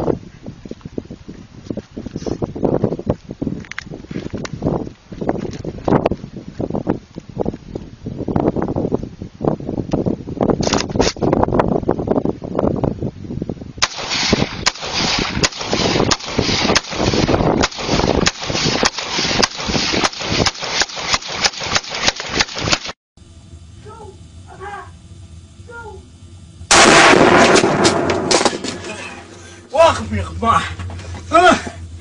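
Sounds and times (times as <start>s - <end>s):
rifle firing rapid shots: 13.8s - 22.9s, 26.7s - 28.6s.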